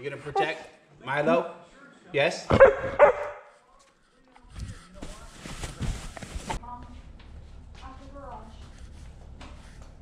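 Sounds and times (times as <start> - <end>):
camera rubbing and soft knocking: 4.4 - 6.6.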